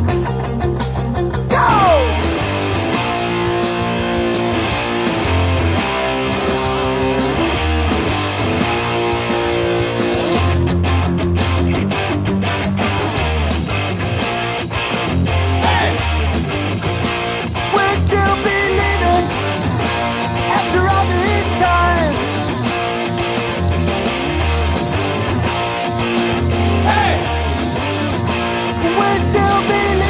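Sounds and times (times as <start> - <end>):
punk rock band playing: 0.0 - 30.0.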